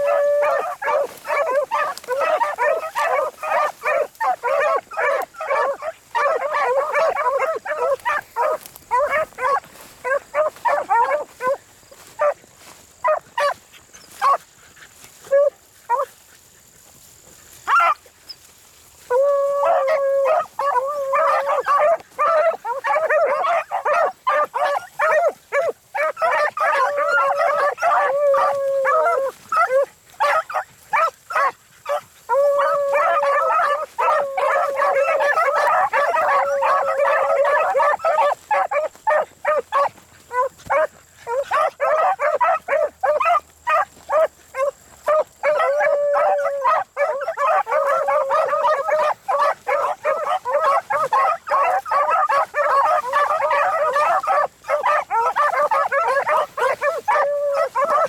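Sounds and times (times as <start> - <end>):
beagles baying: 0.0 - 14.4, 19.0 - 58.0.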